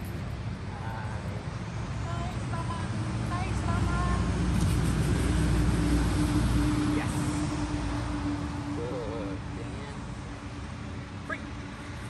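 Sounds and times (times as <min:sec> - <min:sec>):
motor vehicle engine rumble: 0:00.0 - 0:12.0.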